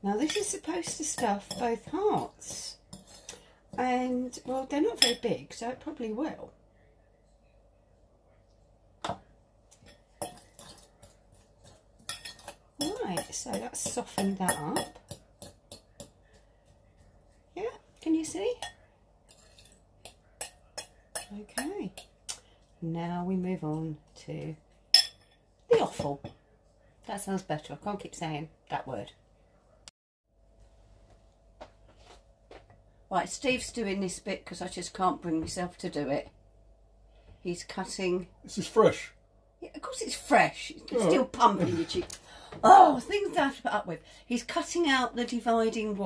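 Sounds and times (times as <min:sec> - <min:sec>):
faint room hum: 0:00.0 - 0:46.0
metal spoon scraping glass bowl: 0:19.3 - 0:19.8.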